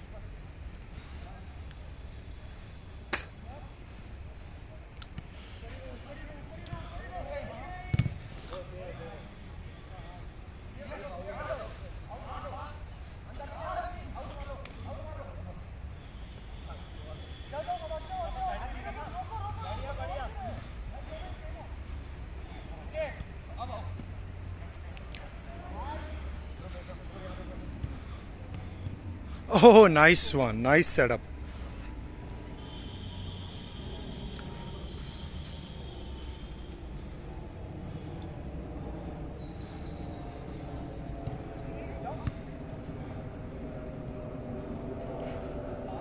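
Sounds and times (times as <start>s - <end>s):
football being kicked: 7.9s - 8.3s
players shouting in distance: 16.4s - 21.8s, 25.4s - 37.2s.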